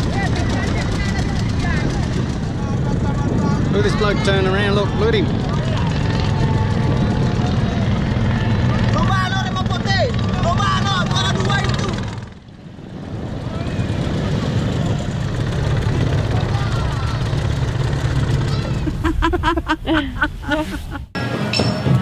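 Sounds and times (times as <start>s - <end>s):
motorboat engine droning: 0.0s - 22.0s
wind: 0.0s - 22.0s.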